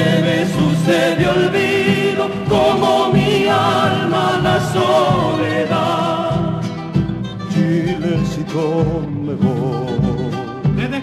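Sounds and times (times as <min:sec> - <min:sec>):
vocal group singing in harmony: 0:00.0 - 0:10.6.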